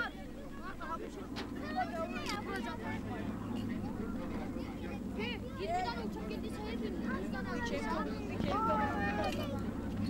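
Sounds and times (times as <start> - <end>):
low engine drone: 0.0 - 10.0
people talking and calling out: 0.0 - 10.0.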